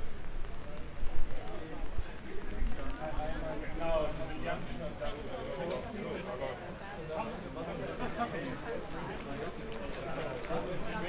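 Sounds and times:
footsteps on wet pavement: 0.0 - 11.0
indistinct voices of passers-by: 0.0 - 11.0.

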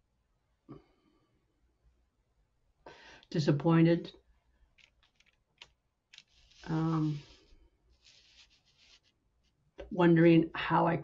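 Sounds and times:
scratchy rustling: 4.8 - 9.6
woman speaking: 6.6 - 7.3, 9.8 - 11.0.

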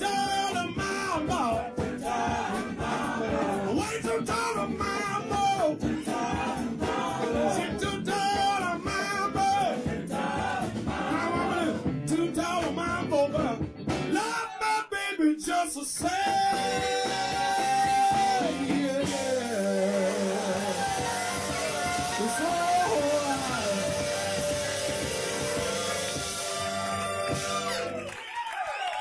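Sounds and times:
blues-rock band playing: 0.0 - 14.4, 16.0 - 28.1
bending lead guitar line: 16.2 - 28.0.

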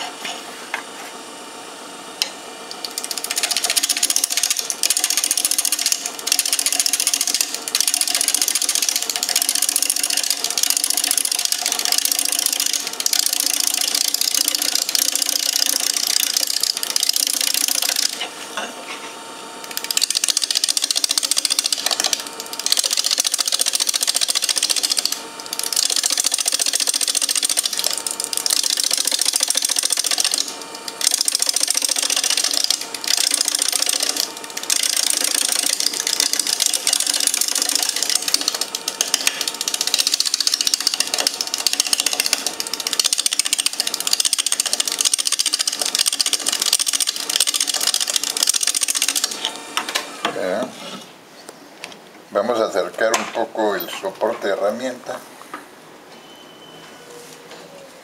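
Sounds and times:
lathe motor hum: 0.0 - 51.0
lathe tool scraping wood: 30.0 - 51.2.

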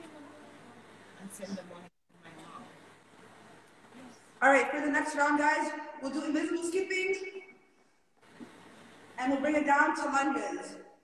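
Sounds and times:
microphone line hiss: 0.0 - 11.0.

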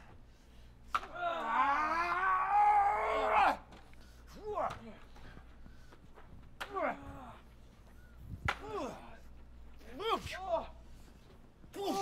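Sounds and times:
man yelling: 11.7 - 12.0.

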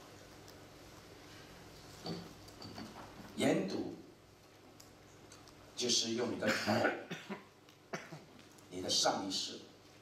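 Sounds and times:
man speaking: 8.7 - 9.7.

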